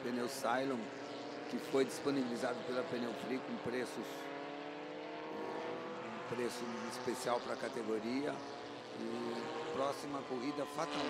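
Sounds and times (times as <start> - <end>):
race car engine running: 0.0 - 11.0.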